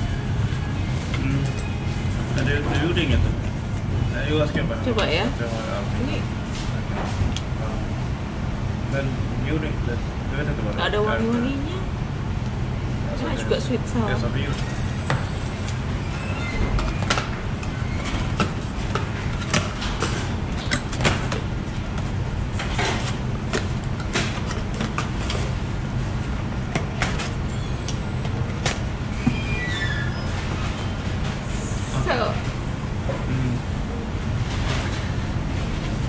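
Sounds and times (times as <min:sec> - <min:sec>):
steady low hum: 0:00.0 - 0:36.0
murmuring voices: 0:33.1 - 0:33.7.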